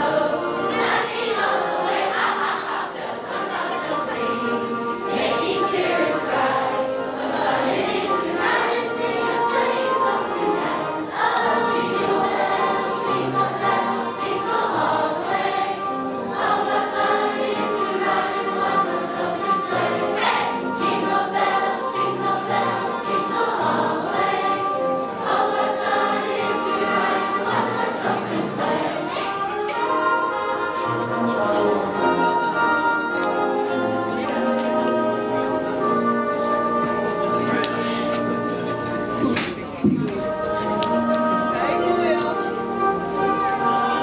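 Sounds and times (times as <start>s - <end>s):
children's choir singing: 0.0s - 44.0s
sustained instrumental accompaniment: 0.0s - 44.0s.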